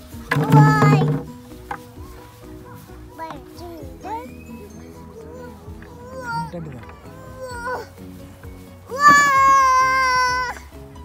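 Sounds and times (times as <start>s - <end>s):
background music: 0.0s - 11.0s
child's high-pitched cry: 5.2s - 7.9s, 8.9s - 10.7s.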